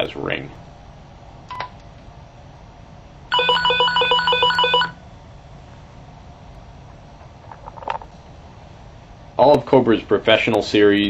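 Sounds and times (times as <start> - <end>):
vibrate alert humming: 3.3 - 5.0.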